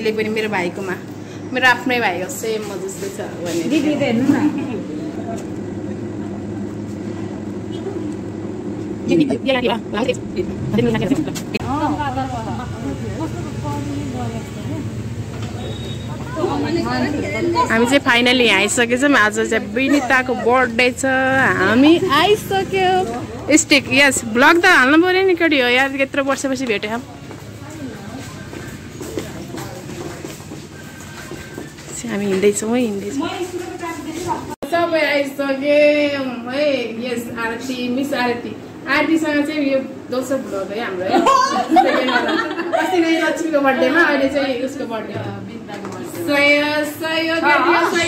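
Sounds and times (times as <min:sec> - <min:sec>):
low rumbling noise: 0:04.7 - 0:15.4.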